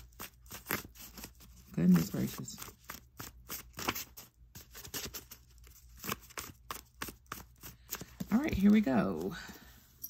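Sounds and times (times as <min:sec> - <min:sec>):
cards being shuffled: 0:00.0 - 0:09.6.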